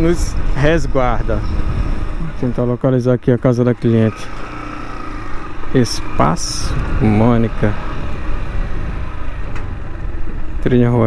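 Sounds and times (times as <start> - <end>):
motorcycle engine running: 0.0 - 11.0
road and wind noise: 0.0 - 11.0.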